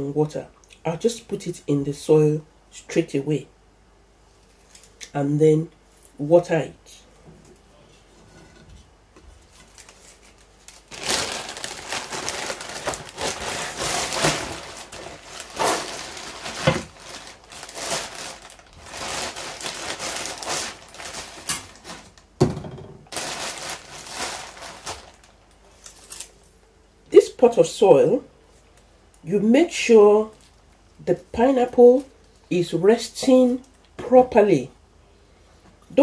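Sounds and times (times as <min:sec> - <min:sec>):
plastic bag crinkling: 0:09.4 - 0:22.4, 0:23.0 - 0:26.6.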